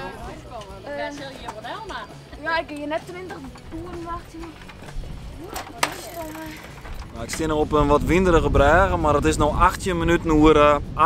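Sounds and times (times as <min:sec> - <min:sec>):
wind buffeting microphone: 0:06.5 - 0:11.0.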